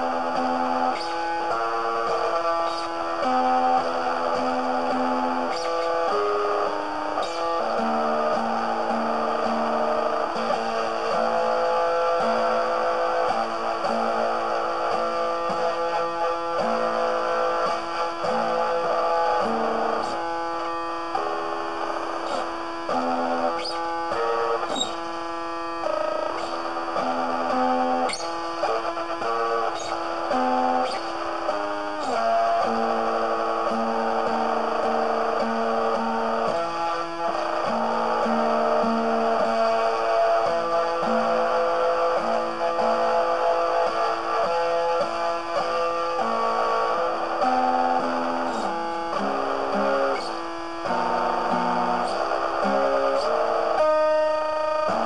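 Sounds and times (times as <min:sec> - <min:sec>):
plucked guitar notes: 0:00.0 - 0:55.0.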